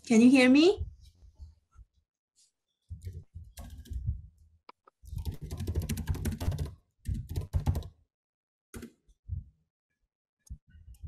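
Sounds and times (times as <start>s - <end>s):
computer keyboard typing: 3.0s - 4.0s, 5.1s - 8.0s.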